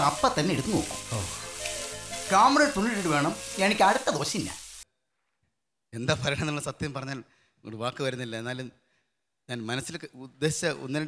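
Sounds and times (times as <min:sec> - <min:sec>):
background music: 0:00.0 - 0:04.7
food sizzling in a frying pan: 0:00.0 - 0:04.8
person speaking loudly: 0:02.2 - 0:04.6.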